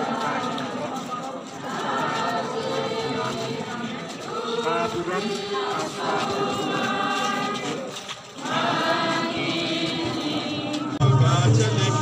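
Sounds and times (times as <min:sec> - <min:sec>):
group singing a hymn: 0:00.0 - 0:12.0.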